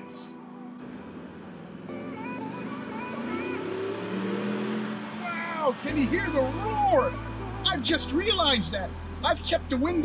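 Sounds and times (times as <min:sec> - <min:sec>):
engine accelerating hard: 0:00.8 - 0:07.2.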